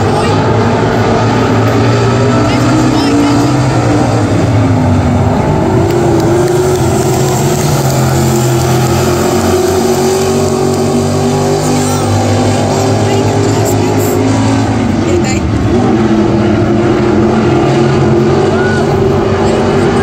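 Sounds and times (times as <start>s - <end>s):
stock car engines racing: 0.0s - 20.0s.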